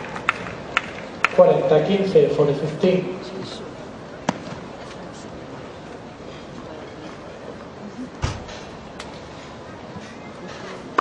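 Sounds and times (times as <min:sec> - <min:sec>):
low crowd murmur: 0:00.0 - 0:11.0.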